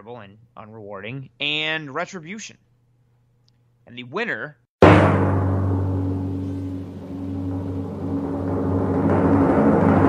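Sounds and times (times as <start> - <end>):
deep boom: 4.8 - 10.0
low sustained tone: 5.5 - 9.4.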